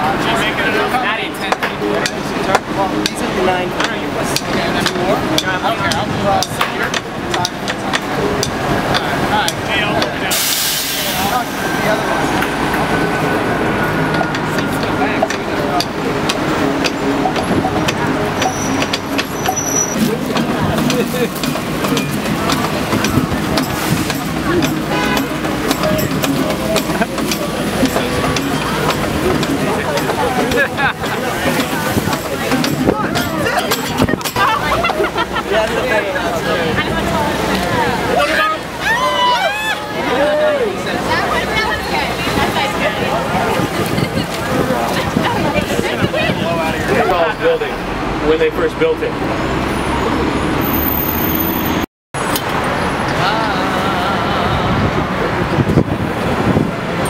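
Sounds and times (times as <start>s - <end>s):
voices: 0.0s - 50.7s, 51.7s - 57.0s
city street traffic: 0.0s - 57.0s
indistinct chatter: 0.0s - 57.0s.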